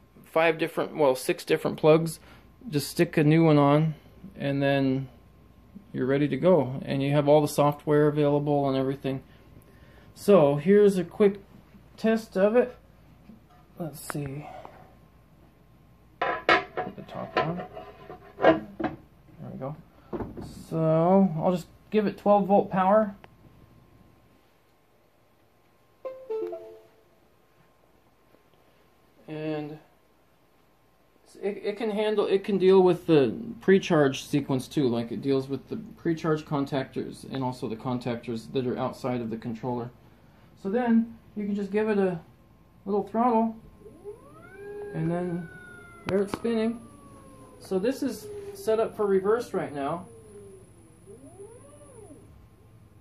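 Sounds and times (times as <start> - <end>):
very high-pitched tone: 26.0 - 27.3, 43.8 - 52.4
two-part electronic chime: 26.1 - 27.2
electric motor whine: 43.7 - 53.0.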